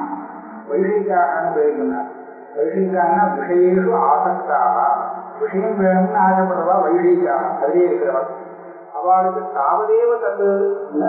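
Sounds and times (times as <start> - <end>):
man chanting: 0.0 - 2.0, 2.6 - 8.2, 9.0 - 11.0.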